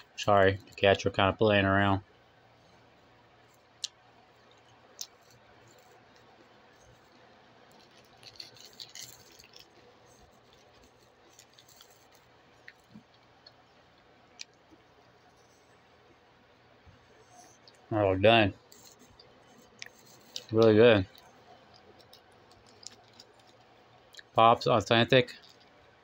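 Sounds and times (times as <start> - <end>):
person chewing: 3.8 - 14.7, 18.7 - 24.4
handling rustle: 4.6 - 13.1.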